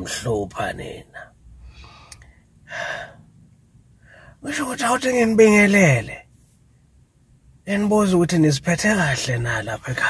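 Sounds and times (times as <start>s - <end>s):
man breathing: 1.6s - 3.3s, 4.0s - 4.4s.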